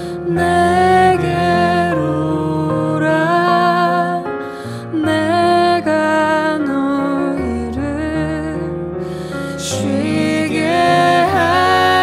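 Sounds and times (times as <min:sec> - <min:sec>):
person singing gentle melody: 0:09.5 - 0:12.0.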